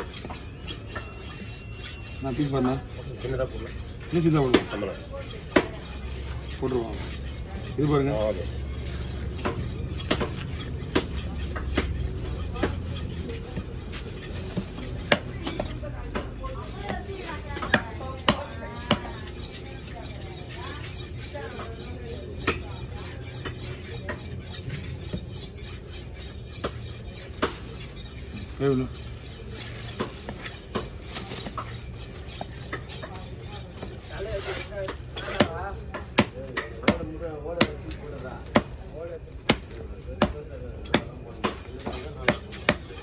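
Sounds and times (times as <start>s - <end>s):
knife chopping on wooden block: 4.5s - 4.8s, 9.3s - 12.9s, 14.4s - 19.2s, 26.6s - 27.7s, 33.8s - 37.0s, 39.5s - 43.0s.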